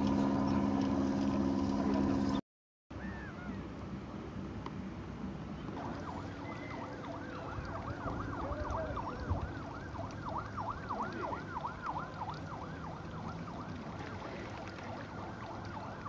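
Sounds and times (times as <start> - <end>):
siren rising and falling: 5.8 - 16.0.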